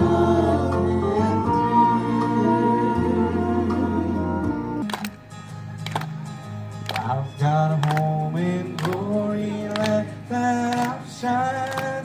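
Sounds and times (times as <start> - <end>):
vocal group singing gospel: 0.0 - 4.8, 8.3 - 12.0.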